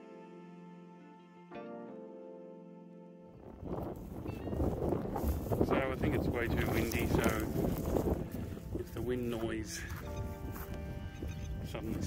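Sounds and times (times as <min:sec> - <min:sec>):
held music chord: 0:00.0 - 0:12.0
wind buffeting microphone: 0:03.4 - 0:12.0.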